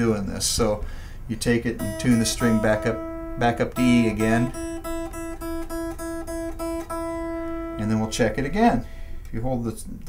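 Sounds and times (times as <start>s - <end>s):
electric guitar string plucked: 1.7s - 9.1s.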